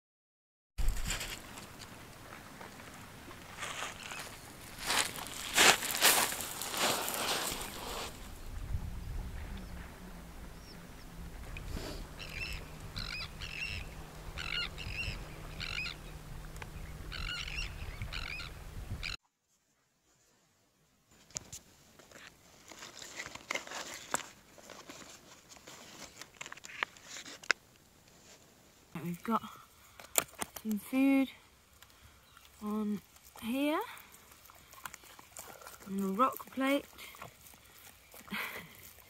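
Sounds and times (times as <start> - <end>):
low steady hum: 0.8 - 19.2
shore birds calling: 3.2 - 19.2.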